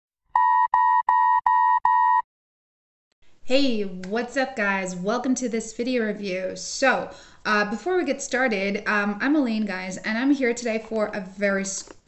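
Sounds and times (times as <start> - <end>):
short electronic beeps: 0.4 - 2.2.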